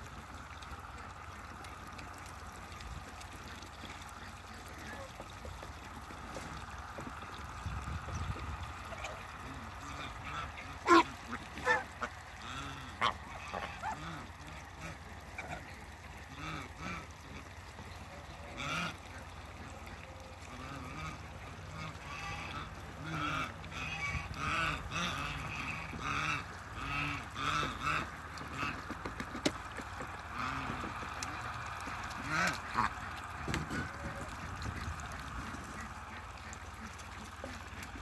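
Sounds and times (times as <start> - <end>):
geese honking: 6.1 - 38.0.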